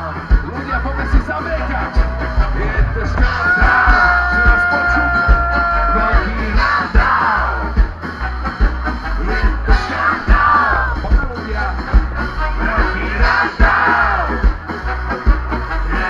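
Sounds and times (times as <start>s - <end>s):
ska band playing live: 0.0s - 16.0s
singer shouting: 0.9s - 7.6s.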